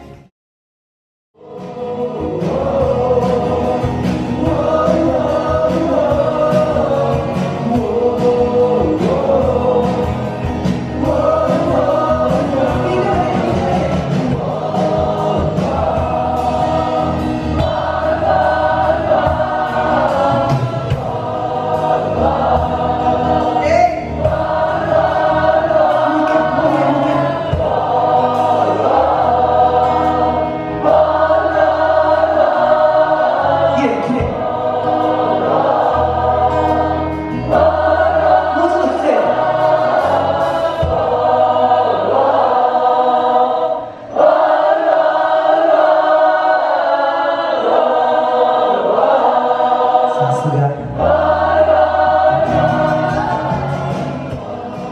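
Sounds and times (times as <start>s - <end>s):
crowd singing along: 1.4s - 54.9s
live band playing: 1.5s - 42.4s, 50.2s - 54.9s.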